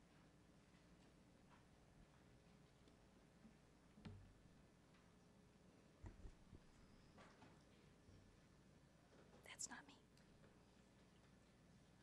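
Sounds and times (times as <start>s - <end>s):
faint whispered voice: 9.4s - 10.1s.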